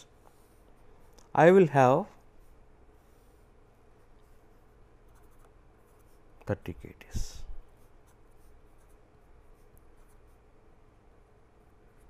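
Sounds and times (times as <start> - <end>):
pen scratching on paper: 4.0 - 6.3.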